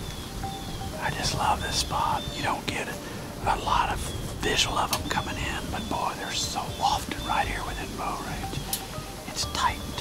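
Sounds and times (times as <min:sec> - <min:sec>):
man whispering: 0:01.0 - 0:08.6, 0:09.3 - 0:10.0.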